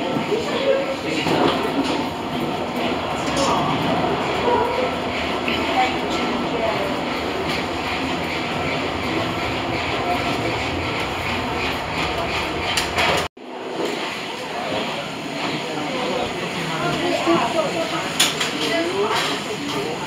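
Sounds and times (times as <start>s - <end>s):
indistinct voices: 0.0s - 13.3s
people walking along corridor: 0.0s - 20.0s.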